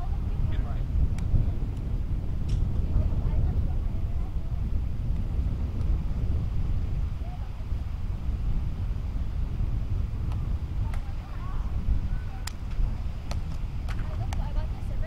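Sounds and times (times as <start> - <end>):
wind buffeting microphone: 0.0 - 15.0
faint distant voices: 6.9 - 8.2, 10.4 - 15.0.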